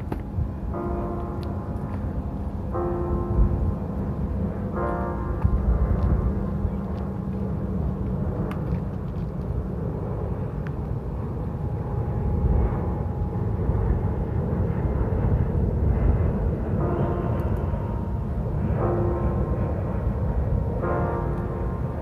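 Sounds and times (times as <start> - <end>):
faint sustained tones: 0.0 - 8.4, 10.0 - 22.0
steady low rumble: 0.0 - 22.0.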